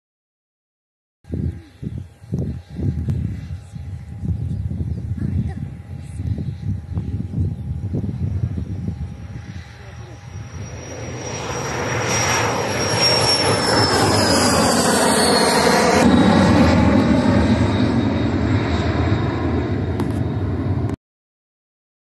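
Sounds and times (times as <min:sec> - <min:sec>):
high jet whine: 0:01.3 - 0:21.0
jet engines roaring past: 0:01.3 - 0:21.0.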